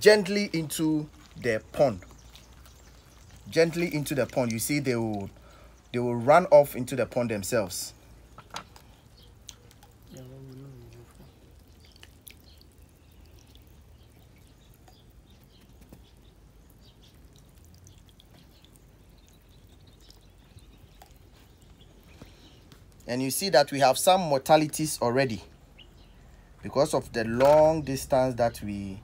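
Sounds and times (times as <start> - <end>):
water dripping and splashing: 0.0 - 25.6.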